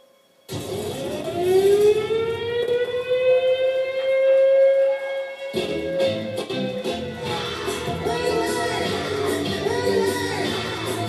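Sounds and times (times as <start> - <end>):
siren wailing: 0.5 - 11.0.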